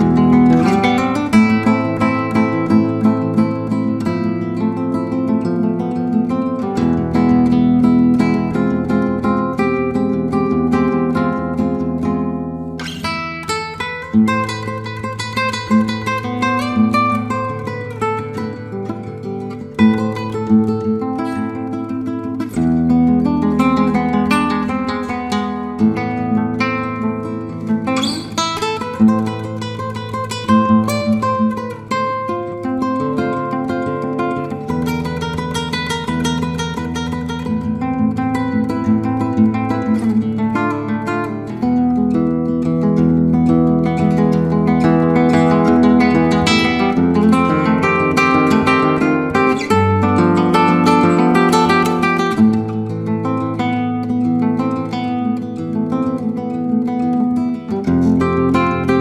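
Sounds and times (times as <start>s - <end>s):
fingerstyle acoustic guitar: 0.0s - 59.0s.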